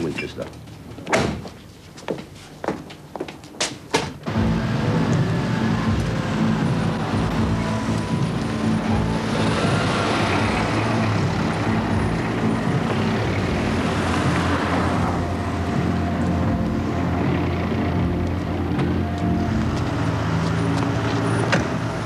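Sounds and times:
street traffic noise: 0:00.0 - 0:22.0
car engine running: 0:04.3 - 0:22.0.

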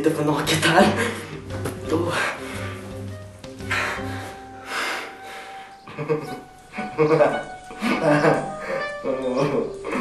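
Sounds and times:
background music with held notes: 0:00.0 - 0:10.0
person laughing and vocalising: 0:05.9 - 0:10.0.

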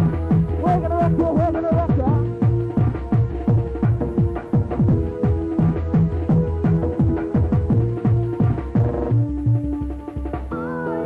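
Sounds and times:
fast kick-drum beat: 0:00.0 - 0:10.5.

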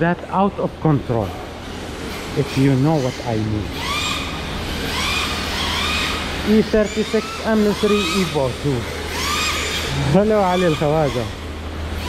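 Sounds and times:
electric motors whining: 0:00.0 - 0:12.0
steady low hum: 0:00.0 - 0:12.0.

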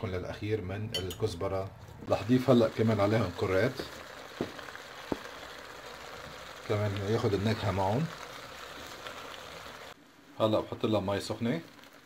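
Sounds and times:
potatoes sizzling in a pot: 0:02.1 - 0:12.0.

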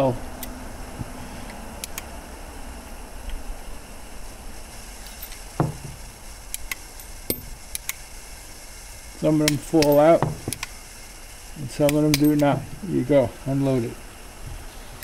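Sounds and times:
louder metal knock: 0:05.6 - 0:05.9, 0:10.2 - 0:10.5
small metal clicks of revolver: 0:11.8 - 0:12.5.

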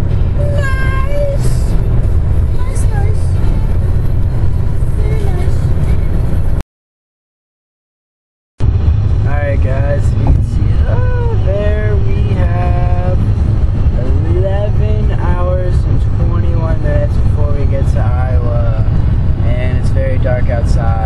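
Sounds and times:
road rumble inside car: 0:00.0 - 0:06.6, 0:08.6 - 0:21.0.

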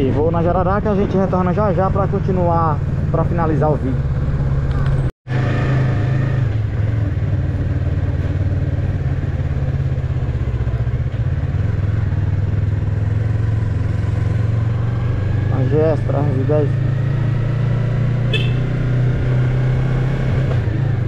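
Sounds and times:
motorcycle engine running: 0:01.5 - 0:21.0.

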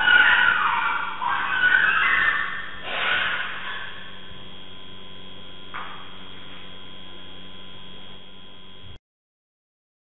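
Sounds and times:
electrical mains hum: 0:00.0 - 0:09.0.

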